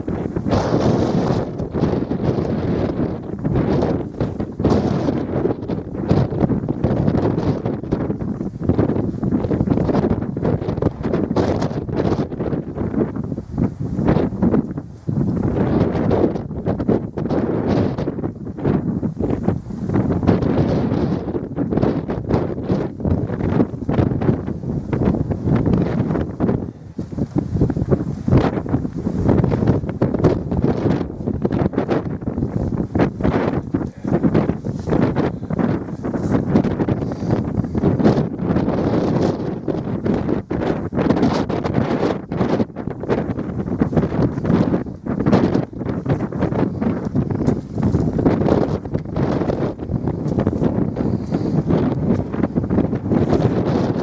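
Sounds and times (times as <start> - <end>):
gusty wind buffeting microphone: 0.0 - 54.0.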